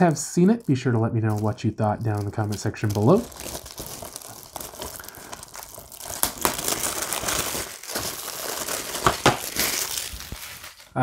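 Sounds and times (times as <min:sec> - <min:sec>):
plastic shrink-wrap crinkling: 0:00.0 - 0:11.0.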